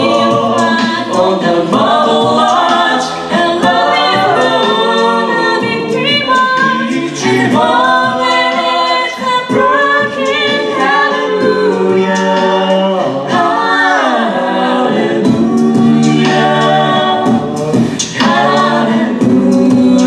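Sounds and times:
a cappella group singing harmony: 0.0 - 20.0.

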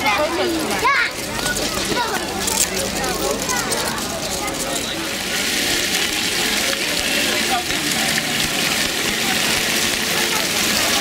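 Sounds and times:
fountain water splashing: 0.0 - 11.0
people talking: 0.0 - 11.0.

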